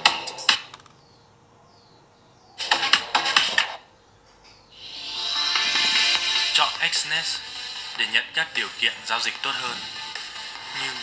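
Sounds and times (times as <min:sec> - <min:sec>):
music through a loudspeaker: 0:04.8 - 0:11.0.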